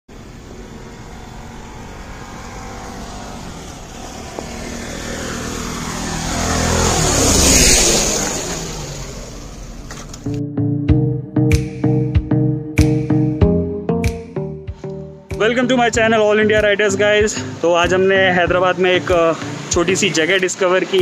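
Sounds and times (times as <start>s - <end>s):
motorcycle passing by: 0.1s - 10.4s, 16.2s - 21.0s.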